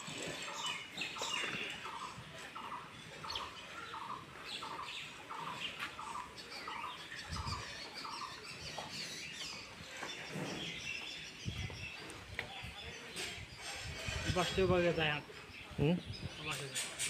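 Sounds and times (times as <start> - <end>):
birds chirping: 0.0 - 17.0.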